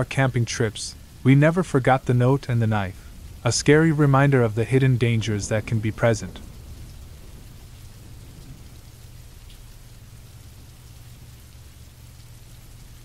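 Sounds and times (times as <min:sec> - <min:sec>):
low hum: 0:00.0 - 0:13.0
rain-like hiss: 0:00.0 - 0:13.0.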